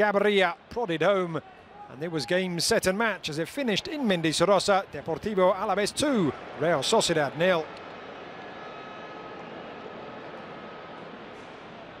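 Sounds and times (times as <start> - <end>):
faint stadium ambience hiss: 0.0 - 12.0.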